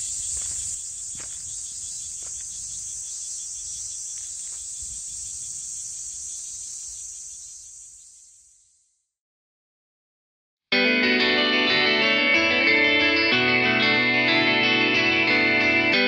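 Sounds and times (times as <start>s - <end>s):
high-pitched insect chorus: 0.0s - 9.0s.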